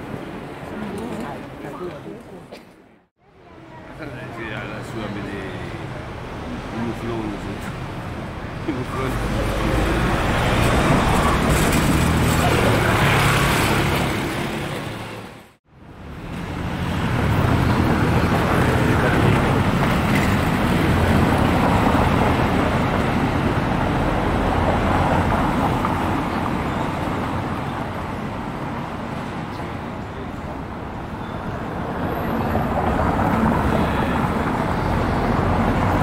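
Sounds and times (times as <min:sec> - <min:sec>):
outdoor ambient noise: 0:00.0 - 0:36.0.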